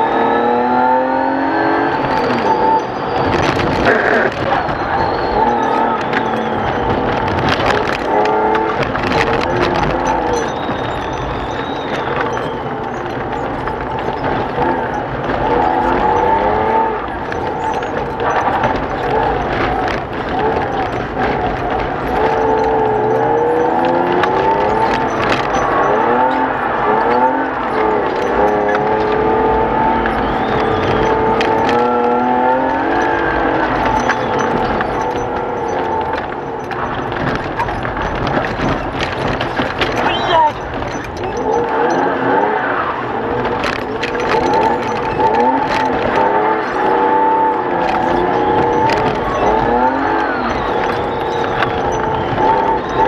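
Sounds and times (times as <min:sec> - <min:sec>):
race car engine revving: 0:00.0 - 0:53.0
sharp clicks: 0:00.0 - 0:53.0
tyre noise: 0:00.0 - 0:53.0.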